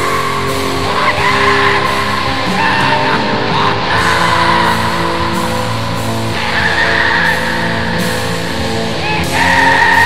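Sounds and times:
distorted guitar holding chords: 0:00.0 - 0:10.0.

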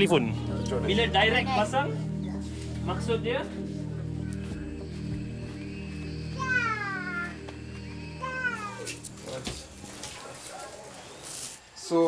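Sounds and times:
background music with low notes: 0:00.0 - 0:10.9.

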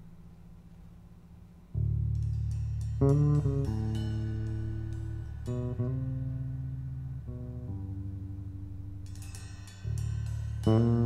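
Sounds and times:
faint low hum: 0:00.0 - 0:11.0
sustained low bass tones: 0:01.7 - 0:11.0.

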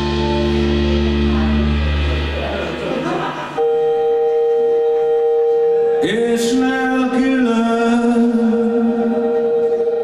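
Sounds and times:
keyboard holding organ-like tone: 0:03.3 - 0:10.0.

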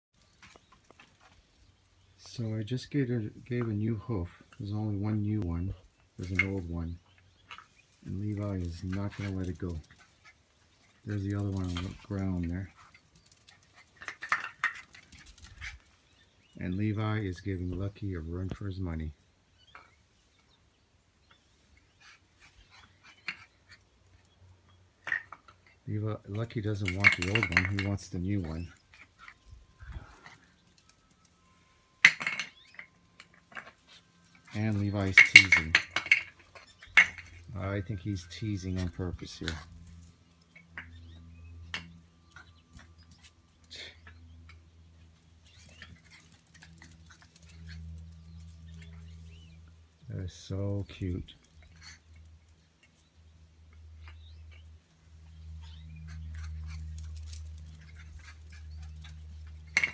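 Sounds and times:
puppy claws clicking on concrete: 0:07.2 - 0:16.3, 0:22.0 - 0:31.4, 0:32.0 - 0:50.1, 0:50.8 - 0:59.9.

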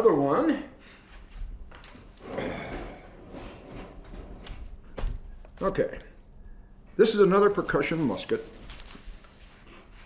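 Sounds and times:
rustling: 0:08.1 - 0:10.0.

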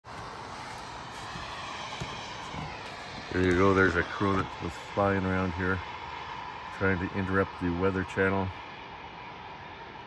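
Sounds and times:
steady outdoor rush: 0:00.0 - 0:10.0.

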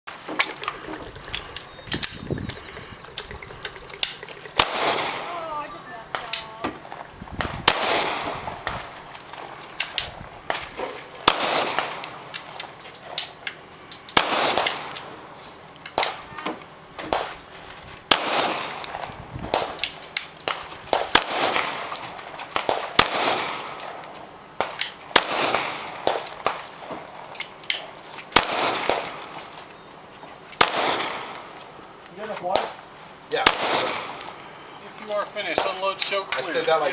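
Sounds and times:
pistol shots: 0:04.6 - 0:05.3, 0:07.6 - 0:09.0, 0:11.2 - 0:12.2, 0:14.1 - 0:15.0, 0:18.1 - 0:22.0, 0:22.6 - 0:24.0, 0:24.6 - 0:26.6, 0:28.4 - 0:29.4, 0:30.6 - 0:31.5, 0:33.4 - 0:34.3.

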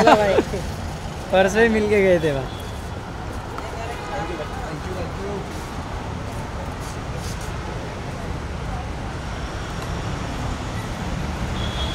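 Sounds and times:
road traffic rumble: 0:00.0 - 0:11.9.

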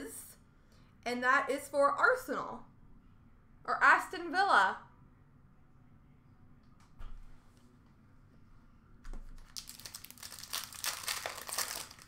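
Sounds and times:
foil wrapper crinkling and tearing: 0:09.4 - 0:12.0.

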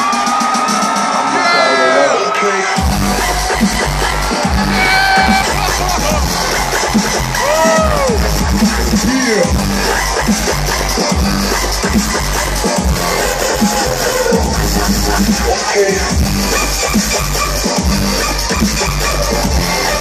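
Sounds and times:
loud live dubstep: 0:01.0 - 0:20.0
heavy bass drop: 0:02.8 - 0:18.5.

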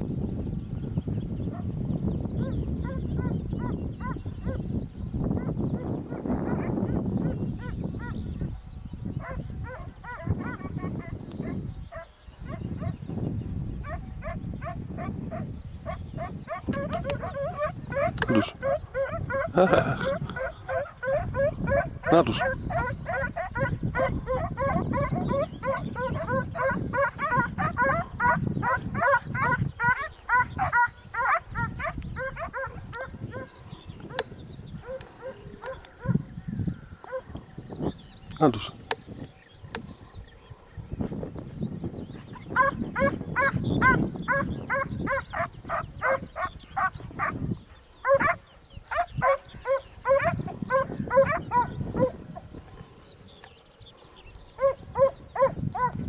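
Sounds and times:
wind rumble on microphone: 0:00.0 - 0:56.0
distant animal calls: 0:13.8 - 0:40.5, 0:42.2 - 0:56.0.

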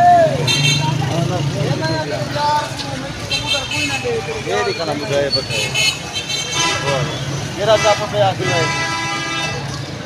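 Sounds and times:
men's voices: 0:00.0 - 0:05.9, 0:06.7 - 0:08.8
vehicle horn honks: 0:05.6 - 0:09.6.

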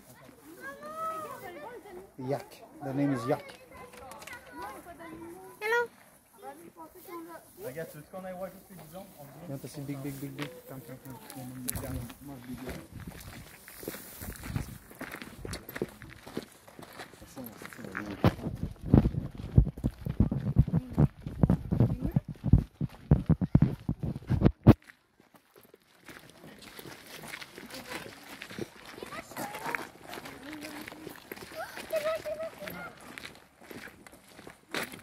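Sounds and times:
footsteps on gravel: 0:00.0 - 0:35.0
people talking: 0:17.3 - 0:18.5, 0:21.8 - 0:22.3, 0:27.6 - 0:33.2.

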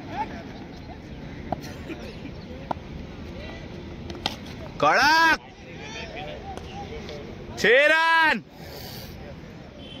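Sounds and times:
players chattering: 0:00.0 - 0:10.0.

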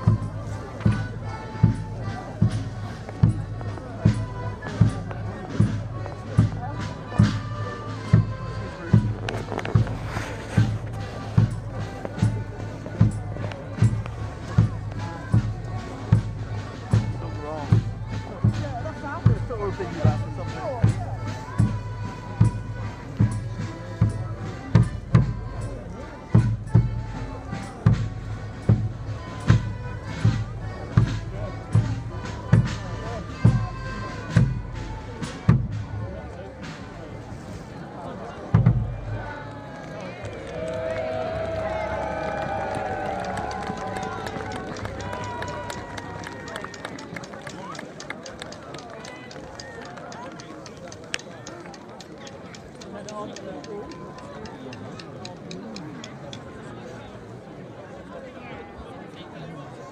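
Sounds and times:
melodeons and accordions playing: 0:00.0 - 0:35.4
crowd cheering and applauding: 0:39.3 - 0:53.0.

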